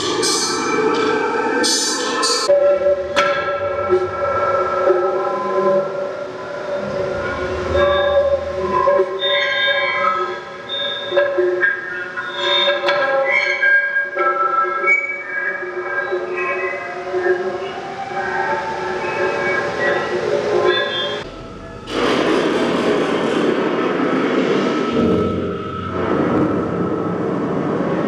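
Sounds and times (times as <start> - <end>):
dense noisy rumble: 20.6 - 28.0.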